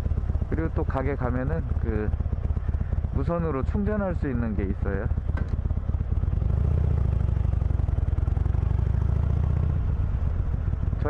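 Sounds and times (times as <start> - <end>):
motorcycle engine while riding: 0.0 - 11.0.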